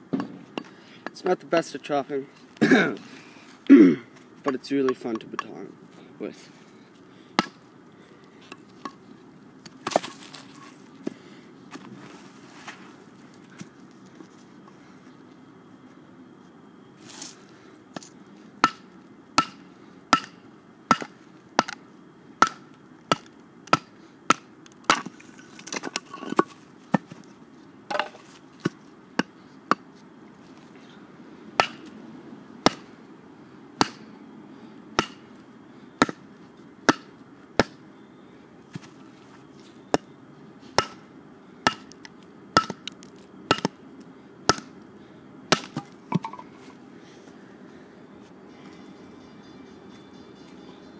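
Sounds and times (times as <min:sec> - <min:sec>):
wood splitting: 0:22.4 - 0:27.2, 0:45.5 - 0:46.3.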